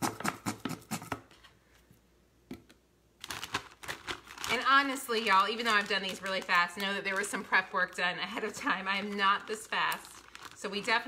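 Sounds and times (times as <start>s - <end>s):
clicks and crackles of bottle and bag: 3.2s - 11.0s.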